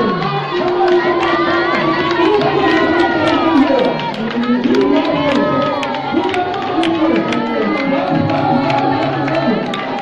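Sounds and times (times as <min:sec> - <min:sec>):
crowd of voices raised: 0:00.0 - 0:10.0
scattered hand claps: 0:00.0 - 0:10.0.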